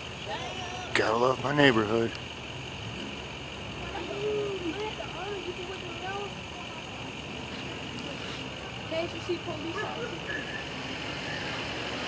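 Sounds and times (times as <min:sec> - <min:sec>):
distant vehicles: 0:00.0 - 0:12.0.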